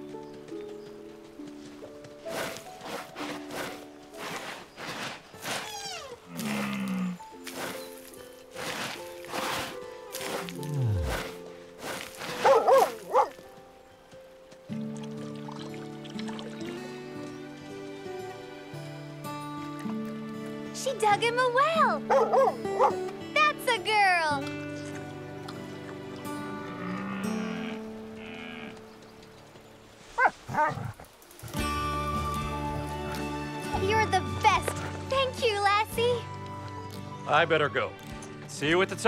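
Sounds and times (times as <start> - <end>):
dog digging in dry earth: 2.2 - 6.5, 7.4 - 13.4
cartoon background music: 5.5 - 13.4, 20.5 - 28.5, 31.6 - 39.0.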